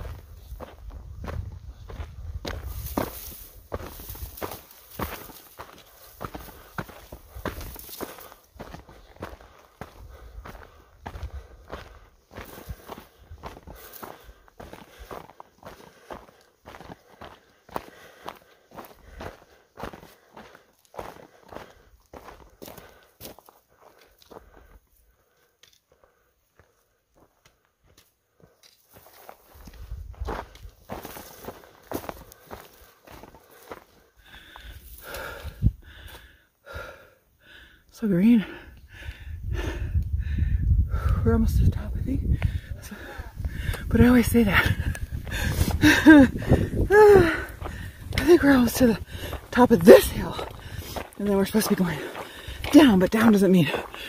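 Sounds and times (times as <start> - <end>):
footsteps crunching on dirt: 0.0 - 40.2, 40.9 - 54.0.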